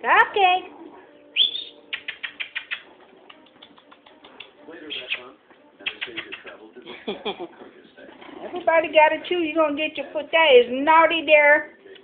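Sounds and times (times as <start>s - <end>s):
puppies clicking and scrabbling: 2.0s - 4.6s.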